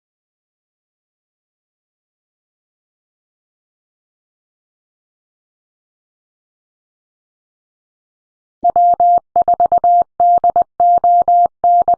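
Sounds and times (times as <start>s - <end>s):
morse code beeps: 8.6s - 11.9s.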